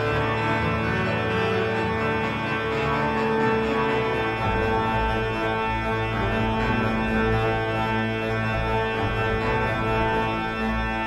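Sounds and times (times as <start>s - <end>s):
deep organ pedal bass: 0.0s - 11.0s
pipe organ sustained chords: 0.0s - 11.0s.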